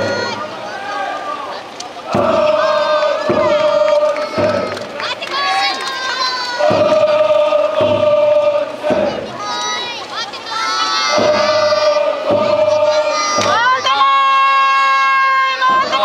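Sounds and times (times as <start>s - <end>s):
taiko drum beats: 0.0s - 0.5s, 2.1s - 5.1s, 6.6s - 9.6s, 11.0s - 14.1s, 15.6s - 16.0s
people chanting in unison: 2.0s - 5.0s, 5.9s - 16.0s.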